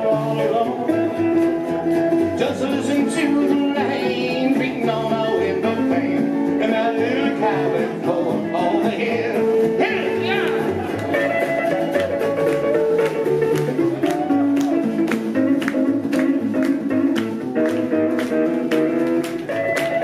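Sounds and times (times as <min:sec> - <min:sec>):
acoustic guitar strumming: 0:00.0 - 0:20.0
electric guitar: 0:00.0 - 0:20.0
upright bass: 0:00.0 - 0:20.0.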